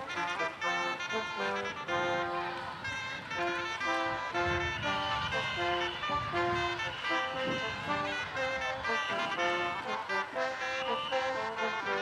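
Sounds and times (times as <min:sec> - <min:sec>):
brass and wind ensemble playing: 0:00.0 - 0:12.0.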